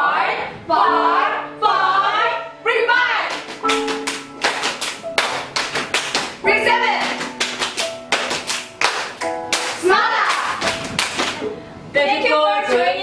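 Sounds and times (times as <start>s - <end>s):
people clapping in rhythm: 3.2s - 11.5s.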